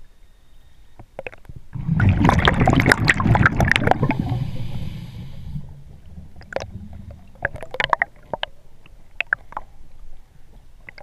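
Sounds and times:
faint low rumble: 0.0 - 11.0
diver breathing underwater: 3.9 - 5.9.

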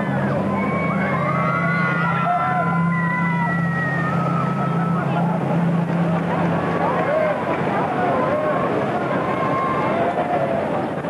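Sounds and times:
people screaming: 0.0 - 5.8, 6.4 - 11.0
boat splashing into water: 0.0 - 11.0
low hum: 0.0 - 11.0
people shouting: 0.4 - 5.4, 6.8 - 10.7.

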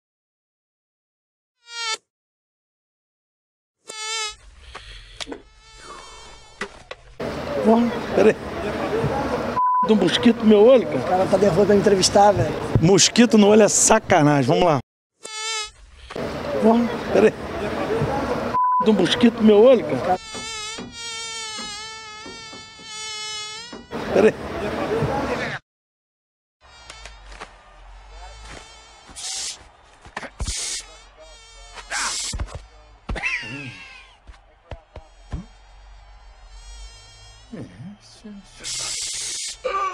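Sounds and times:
mosquito buzzing: 1.6 - 2.1, 3.8 - 7.3, 15.2 - 16.9, 19.8 - 24.6, 26.6 - 29.6, 30.4 - 33.0, 35.0 - 38.0.

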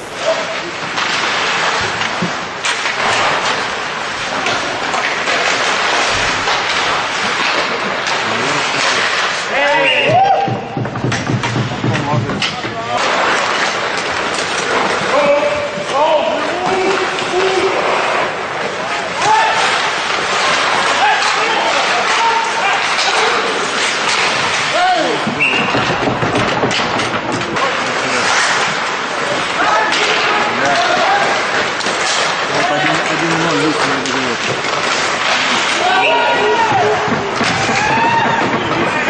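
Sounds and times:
skate blades scraping ice: 0.2 - 39.0
sticks clacking on puck: 0.5 - 18.3, 19.2 - 39.0
puck thudding against boards: 0.8 - 15.8, 19.2 - 33.1, 34.0 - 39.0
players shouting: 8.0 - 13.0, 19.1 - 26.2, 29.3 - 39.0.

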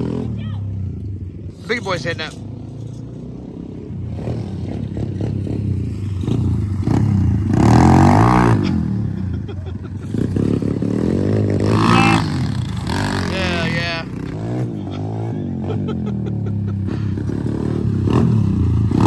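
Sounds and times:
dirt bikes revving past: 0.0 - 19.0.

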